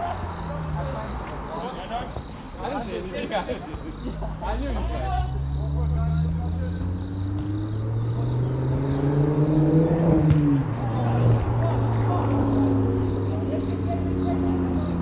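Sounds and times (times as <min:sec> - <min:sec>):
vehicle engine running: 0:03.9 - 0:15.0.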